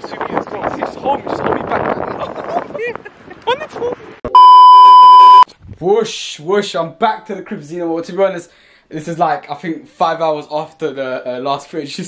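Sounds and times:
censor bleep: 0:04.3 - 0:05.5.

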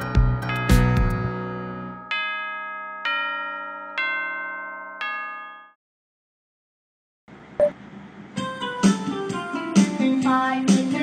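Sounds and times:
clock chime striking: 0:02.0 - 0:05.8.

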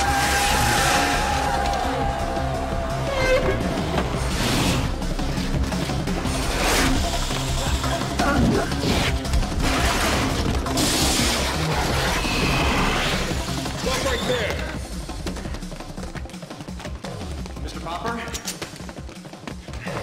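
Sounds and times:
fast chase music: 0:00.0 - 0:20.0.

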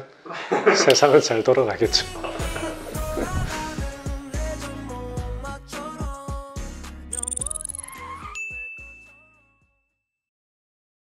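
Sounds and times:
outro jingle music: 0:07.1 - 0:09.4
bright bell-like ding: 0:07.2 - 0:09.3.

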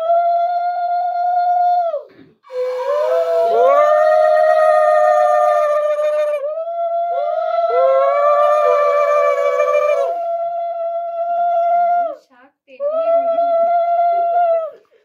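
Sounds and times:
women ululating: 0:02.5 - 0:12.2, 0:12.8 - 0:14.8.

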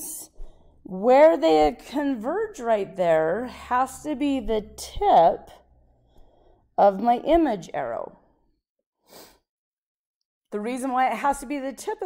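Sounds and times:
woman speaking: 0:00.0 - 0:00.3, 0:00.9 - 0:05.6, 0:06.8 - 0:08.2, 0:10.6 - 0:12.0
woman breathing in: 0:00.4 - 0:00.9, 0:05.8 - 0:06.7.

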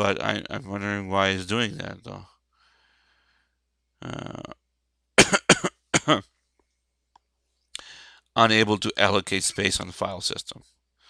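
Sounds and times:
man coughing: 0:00.1 - 0:02.0, 0:05.2 - 0:06.2.

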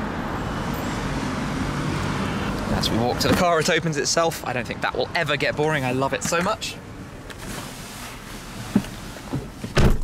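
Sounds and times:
car door thumping shut: 0:08.8 - 0:10.0.

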